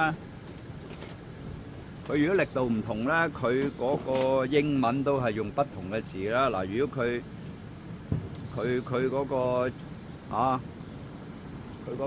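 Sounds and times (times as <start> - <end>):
faint traffic hum: 0.0 - 12.0
man speaking: 2.1 - 7.3, 8.5 - 10.7.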